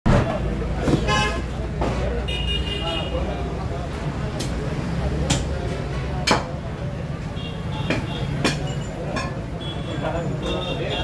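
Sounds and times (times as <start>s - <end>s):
low traffic rumble: 0.1s - 11.0s
voices: 0.1s - 11.0s.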